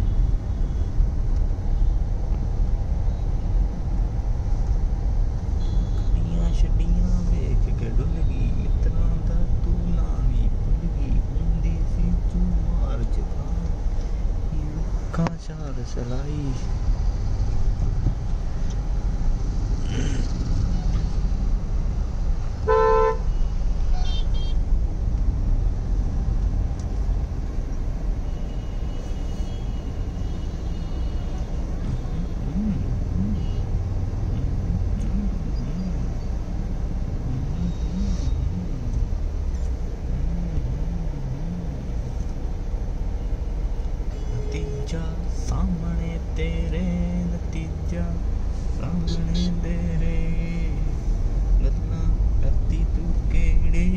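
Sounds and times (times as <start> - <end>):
traffic engines rumbling: 0.0 - 53.9
car horn honk: 22.6 - 24.6.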